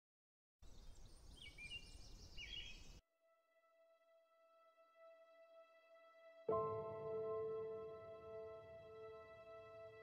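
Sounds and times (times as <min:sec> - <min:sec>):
birds chirping: 0:00.6 - 0:03.0.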